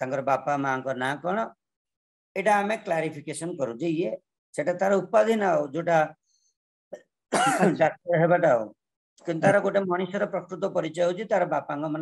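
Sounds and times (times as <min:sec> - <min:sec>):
man clearing his throat: 0:07.3 - 0:08.0.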